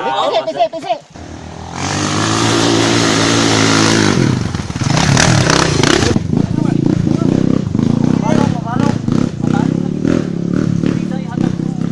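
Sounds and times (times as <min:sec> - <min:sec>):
dirt bike engines idling: 0:00.3 - 0:11.9
people talking: 0:05.8 - 0:11.9.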